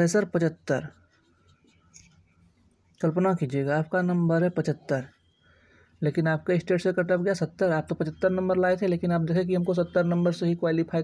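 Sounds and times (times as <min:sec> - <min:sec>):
marker pen scratching on paper: 0:00.0 - 0:03.3.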